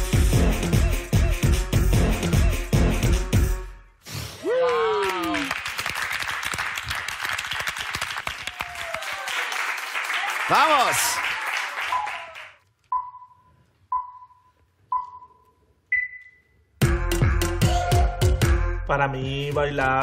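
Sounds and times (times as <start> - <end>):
group applauding and cheering: 4.4 - 12.7
higher beep: 12.9 - 16.6
short beeps: 12.9 - 16.6.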